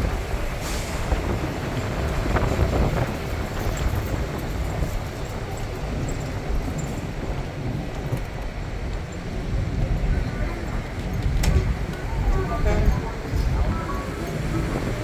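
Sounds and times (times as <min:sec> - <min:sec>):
vehicle road and engine noise: 0:00.0 - 0:15.0
wind buffeting microphone: 0:00.0 - 0:15.0.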